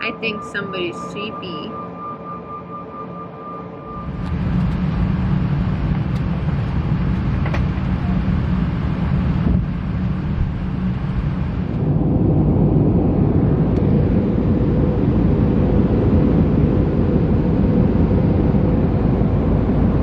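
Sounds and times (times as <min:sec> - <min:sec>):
airliner cabin engine rumble: 0:00.0 - 0:01.7, 0:03.9 - 0:20.0.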